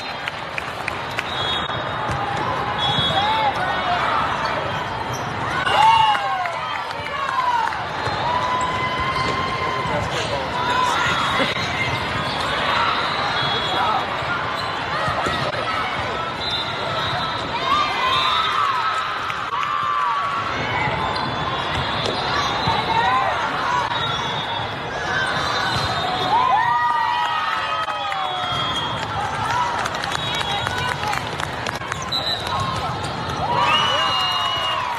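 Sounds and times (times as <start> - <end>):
crowd hubbub: 0.0 - 34.9
sneakers squeaking on court: 1.5 - 5.7, 13.4 - 15.6
shoes squeaking on court: 4.3 - 5.6.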